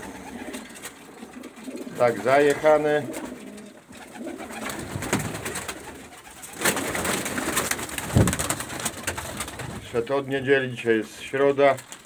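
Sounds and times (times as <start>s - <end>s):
pigeons cooing: 0.0s - 8.0s
birds clicking and rustling: 0.0s - 10.6s, 11.2s - 12.0s.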